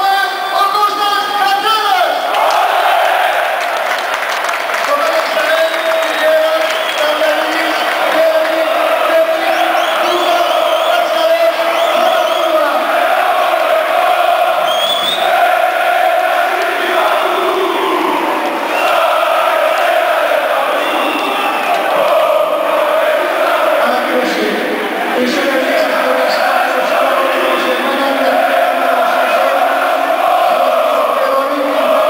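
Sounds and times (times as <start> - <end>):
stadium crowd chanting and singing: 2.0 - 32.0.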